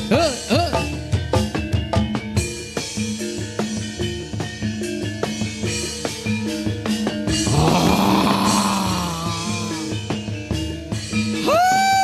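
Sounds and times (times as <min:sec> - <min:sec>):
gamelan ensemble playing: 0:00.1 - 0:11.4.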